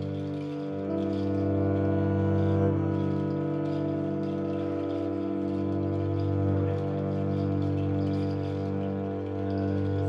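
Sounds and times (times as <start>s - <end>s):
bowed double bass drone: 0.0s - 10.0s
woodwinds holding long notes: 0.0s - 10.0s.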